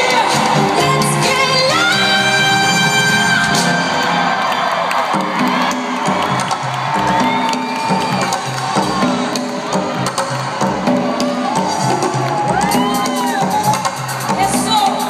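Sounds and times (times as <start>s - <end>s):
live pop music: 0.0s - 15.0s
audience cheering and whooping: 1.7s - 15.0s.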